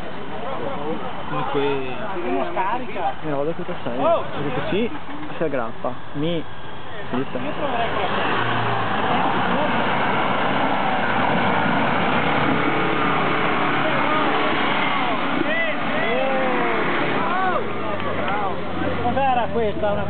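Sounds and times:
tyres churning through mud: 0.0 - 20.0
vehicle engine under load: 2.6 - 20.0
raised voices calling out: 13.6 - 19.1.

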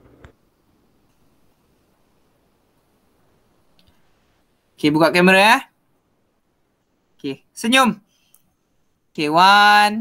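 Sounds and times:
man speaking: 4.8 - 5.8, 7.2 - 8.0, 9.2 - 10.0.

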